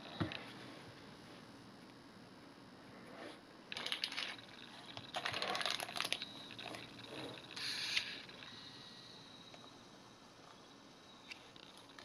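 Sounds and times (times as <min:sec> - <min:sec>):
plastic bag crinkling: 0:03.7 - 0:07.4.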